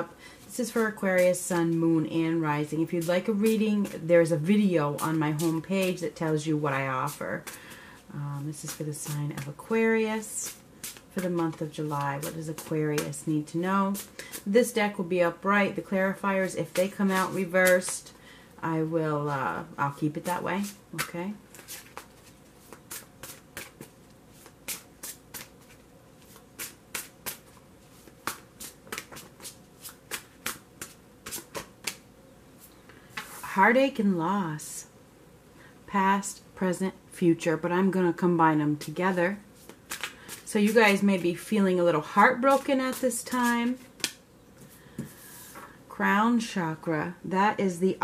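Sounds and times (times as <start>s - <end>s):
cards being shuffled: 10.4s - 13.2s, 20.1s - 32.0s, 39.6s - 41.0s, 42.3s - 45.7s.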